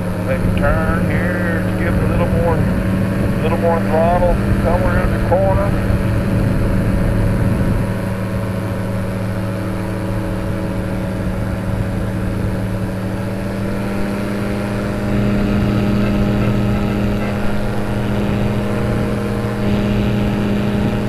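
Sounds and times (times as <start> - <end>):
propeller engine running: 0.0 - 21.0.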